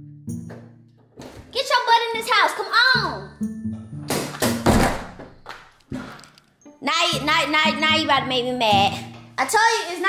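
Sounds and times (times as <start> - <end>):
thump: 4.2 - 5.3.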